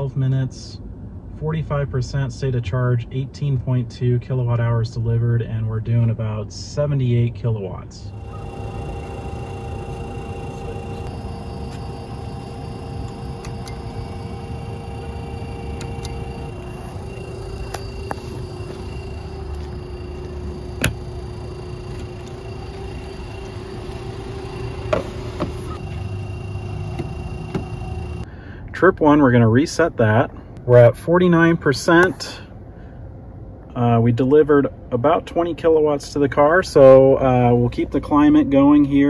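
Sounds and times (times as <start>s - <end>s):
traffic: 7.1s - 29.5s
cooling fans whirring: 7.8s - 39.0s.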